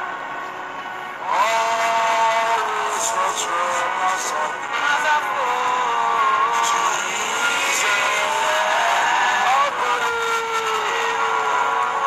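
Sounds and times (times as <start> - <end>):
gospel worship music: 0.0 - 12.0.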